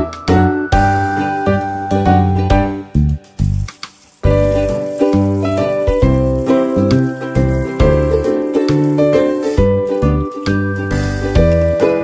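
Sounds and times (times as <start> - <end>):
bright jingly tune: 3.5 - 12.0.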